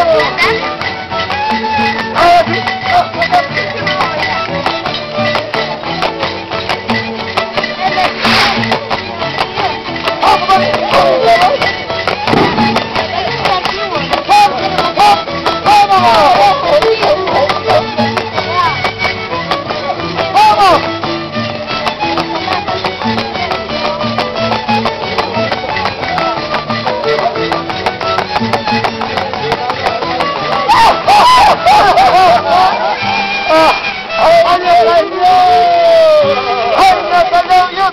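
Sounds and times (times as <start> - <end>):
harp and violin folk dance tune: 0.0 - 37.9
voices: 0.0 - 37.9.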